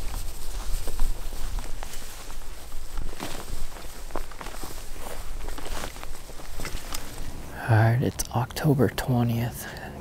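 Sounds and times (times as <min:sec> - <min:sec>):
stalks swishing against clothing: 0:00.0 - 0:07.4
footsteps through dry grass: 0:00.0 - 0:07.6.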